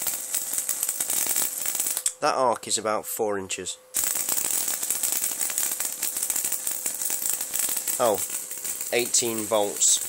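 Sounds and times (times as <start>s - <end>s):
electric arc crackling: 0.0s - 2.2s, 3.9s - 10.0s
steady electrical whine: 0.0s - 10.0s.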